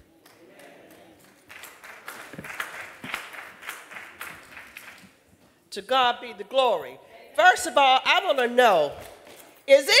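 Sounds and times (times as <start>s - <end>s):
congregation applauding: 0.2s - 5.2s.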